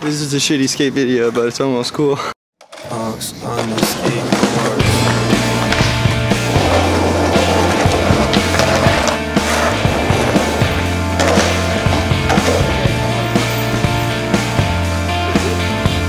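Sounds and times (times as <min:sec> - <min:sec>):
skateboard clacking: 0:02.6 - 0:13.8
skateboard wheels rolling on asphalt: 0:03.5 - 0:15.0
rock music: 0:03.8 - 0:16.0.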